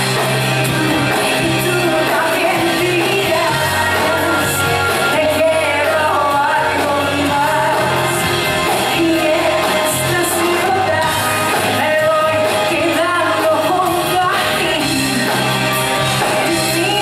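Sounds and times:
drums: 0:00.0 - 0:17.0
electric guitar: 0:00.0 - 0:17.0
woman singing lead vocal: 0:00.0 - 0:17.0.

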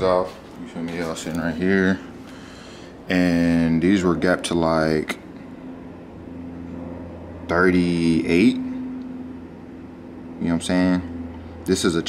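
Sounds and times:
faint low background hum: 0:00.0 - 0:12.0.

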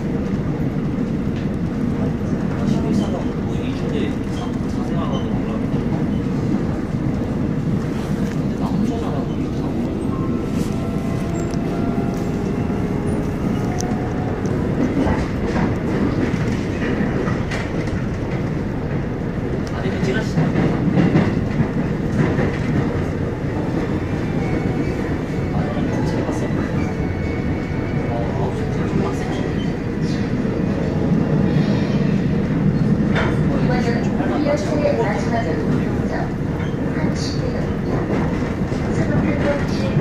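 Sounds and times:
train wheels rumbling on rail: 0:00.0 - 0:40.0.

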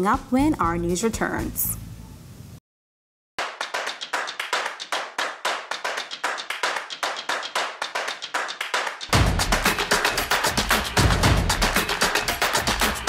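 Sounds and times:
fast sharp claps: 0:03.4 - 0:13.0
music with bass line: 0:09.1 - 0:13.0.

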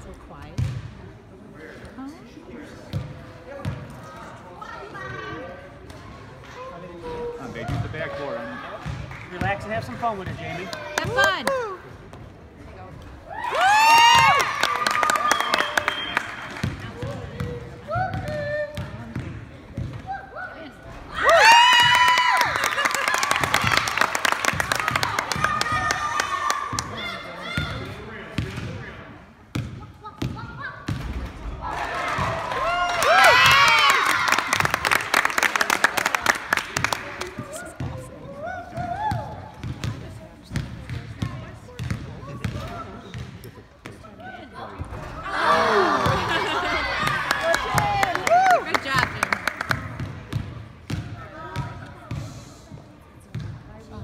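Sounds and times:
crowd shouting and cheering: 0:06.9 - 0:12.0, 0:13.2 - 0:18.8, 0:20.0 - 0:28.0, 0:30.4 - 0:39.6, 0:44.8 - 0:50.1.

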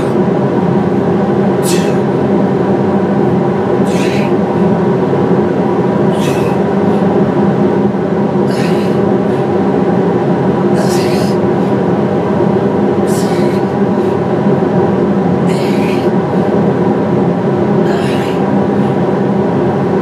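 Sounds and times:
industrial fans droning: 0:00.0 - 0:20.0.

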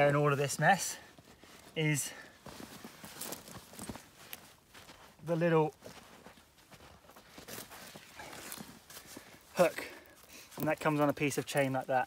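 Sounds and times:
gloved hand rustling through snow: 0:00.3 - 0:11.0.

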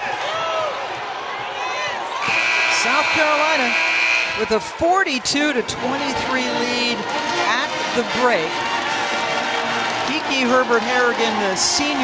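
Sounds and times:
scoreboard horn long tone: 0:02.2 - 0:04.7.

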